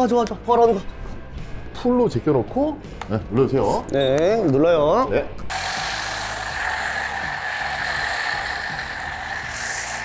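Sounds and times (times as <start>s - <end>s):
pressure washer spraying foam: 5.5s - 10.0s.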